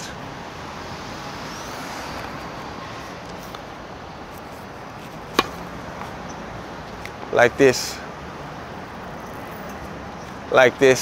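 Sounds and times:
steady background noise: 0:00.0 - 0:11.0
tennis racket hitting ball: 0:04.3 - 0:06.2.

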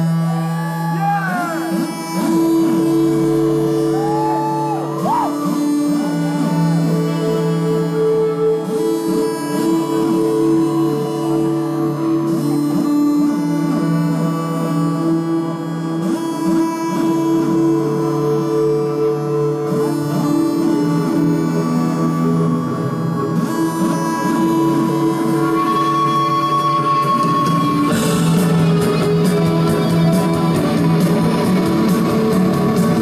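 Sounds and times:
crowd whooping: 0:00.0 - 0:01.9, 0:03.7 - 0:07.3
band playing droning chords: 0:00.0 - 0:33.0
electric guitar: 0:00.0 - 0:33.0.

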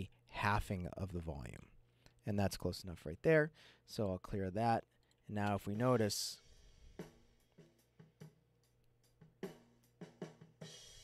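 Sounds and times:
drum kit beat with cymbals: 0:05.5 - 0:11.0.

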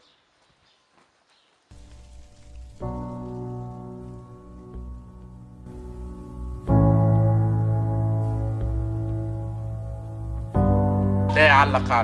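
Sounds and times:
steady hiss: 0:00.0 - 0:12.0
soft music held chord: 0:01.9 - 0:12.0.

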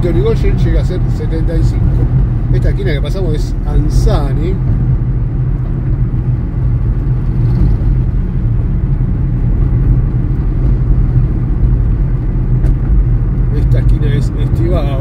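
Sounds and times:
car road rumble from inside cabin: 0:00.0 - 0:15.0.

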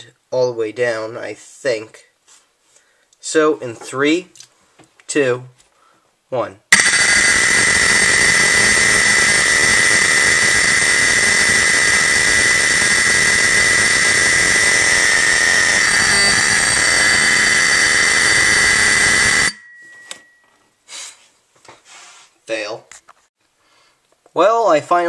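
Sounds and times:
fire alarm horn blaring: 0:06.8 - 0:20.1.

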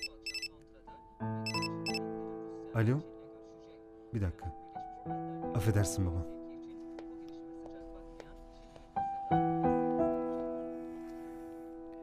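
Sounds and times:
mobile phone ringtone beeps: 0:00.0 - 0:00.5, 0:01.5 - 0:02.0
soft background music: 0:00.0 - 0:12.0.

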